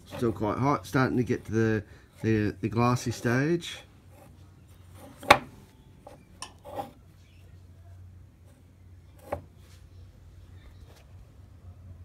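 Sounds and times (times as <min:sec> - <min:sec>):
faint low hum: 0:00.0 - 0:12.0.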